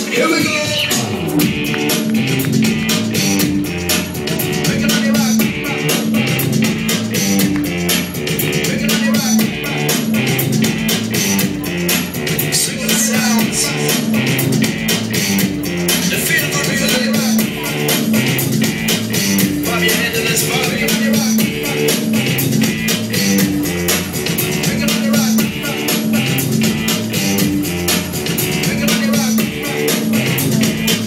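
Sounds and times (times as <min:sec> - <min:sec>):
instrumental rock music: 0:00.0 - 0:31.0.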